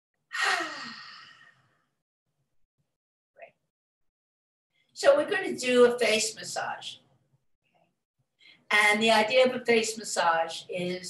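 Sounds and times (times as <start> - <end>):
woman sighing: 0.4 - 1.6.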